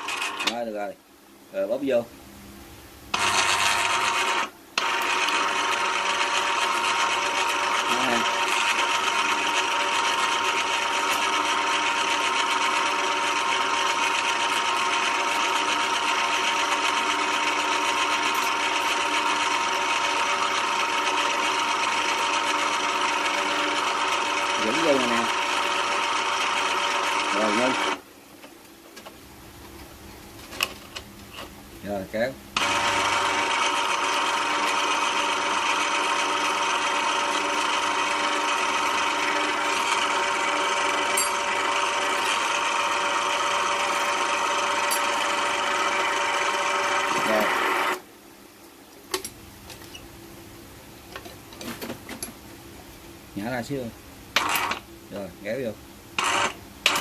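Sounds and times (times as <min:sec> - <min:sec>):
electric winch whining: 0:03.1 - 0:28.0, 0:32.6 - 0:48.0.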